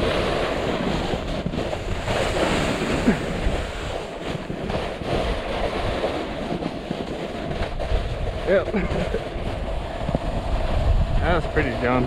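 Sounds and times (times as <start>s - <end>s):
snowboard scraping over slush: 0.0s - 12.0s
wind buffeting microphone: 0.0s - 12.0s.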